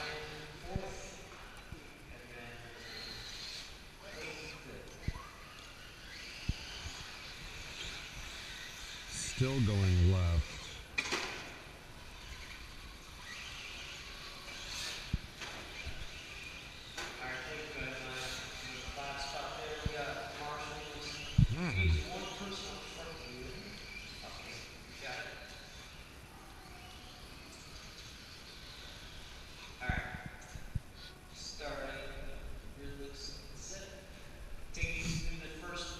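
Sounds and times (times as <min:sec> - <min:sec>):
people talking indistinctly: 0:09.1 - 0:10.6, 0:21.4 - 0:22.2.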